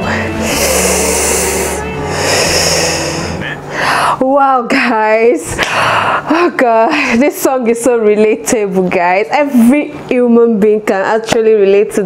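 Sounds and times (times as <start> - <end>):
woman breathing out heavily: 0.0 - 4.2, 5.6 - 6.3
faint music: 0.0 - 12.0.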